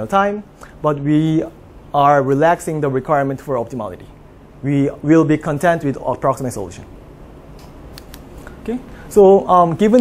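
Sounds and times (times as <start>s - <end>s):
man speaking: 0.0s - 6.9s, 8.6s - 10.0s
room background hum: 0.0s - 10.0s.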